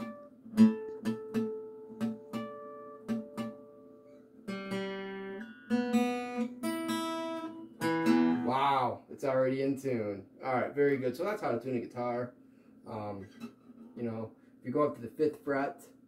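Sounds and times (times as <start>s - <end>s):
acoustic guitar harmonics: 0.0s - 8.9s
acoustic guitar notes ringing: 0.0s - 8.9s.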